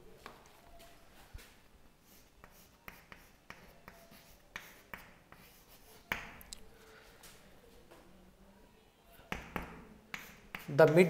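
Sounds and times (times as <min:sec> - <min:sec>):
chalk scratching on chalkboard: 0:02.0 - 0:06.3, 0:09.3 - 0:11.0.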